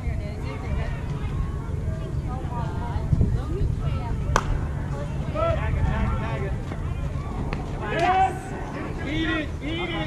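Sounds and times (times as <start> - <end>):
steady low rumble: 0.0 - 10.0
bat hitting ball: 4.3 - 4.6.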